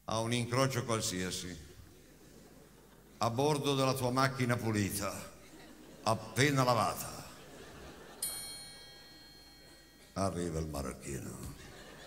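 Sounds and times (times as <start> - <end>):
high metallic chime: 7.9 - 11.4.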